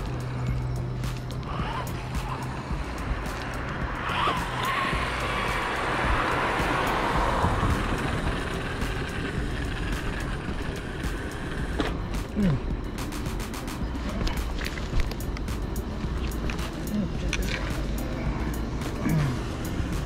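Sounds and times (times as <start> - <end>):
rushing road and wind noise: 0.0 - 20.0.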